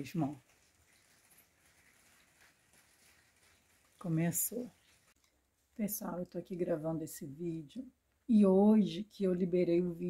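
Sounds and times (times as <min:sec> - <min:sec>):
light rain hiss: 0:00.0 - 0:06.5.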